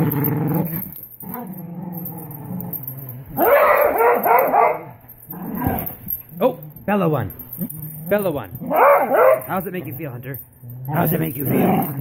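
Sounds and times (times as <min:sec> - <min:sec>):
dogs growling: 0:00.0 - 0:12.0
dogs barking: 0:03.3 - 0:05.9, 0:08.1 - 0:09.8.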